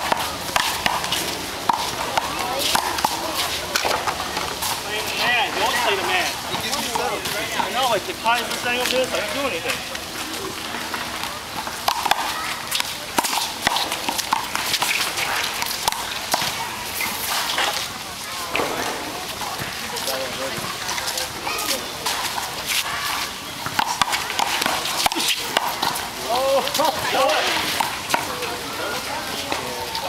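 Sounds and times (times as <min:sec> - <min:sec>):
players' voices: 0:00.0 - 0:30.0
sneakers scuffing: 0:18.5 - 0:21.0.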